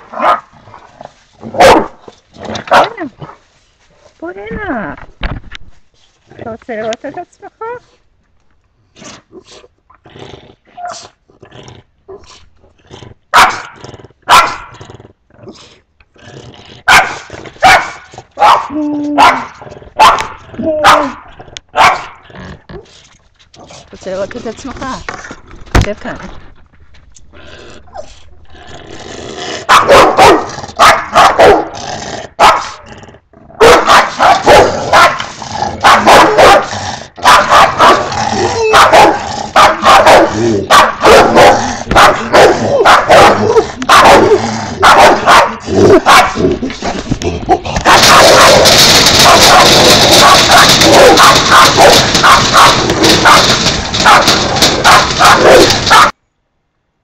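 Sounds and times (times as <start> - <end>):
dog barking: 0.1 - 0.5, 1.5 - 2.0, 13.3 - 13.7, 14.3 - 14.7, 16.9 - 22.2, 29.7 - 31.7, 32.4 - 32.8, 33.6 - 35.2, 35.8 - 46.4, 47.8 - 56.2.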